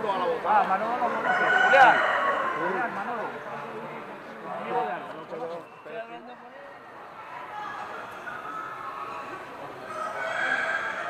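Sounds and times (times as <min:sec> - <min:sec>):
people talking: 0:00.0 - 0:11.0
rooster crowing: 0:01.1 - 0:02.9, 0:09.8 - 0:11.0.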